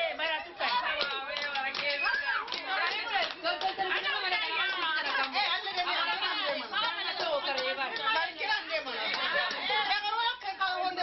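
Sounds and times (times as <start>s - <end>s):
women chattering and calling out: 0.0s - 11.0s.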